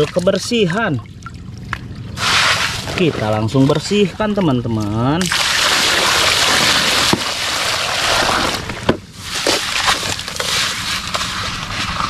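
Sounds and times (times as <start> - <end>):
water sloshing: 0.0 - 12.0
wet sand scraped from plastic: 2.2 - 3.4, 5.6 - 12.0.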